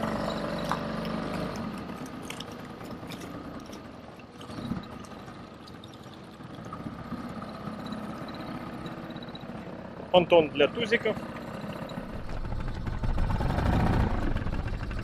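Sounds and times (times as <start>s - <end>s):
outboard motor running: 0.0s - 15.0s.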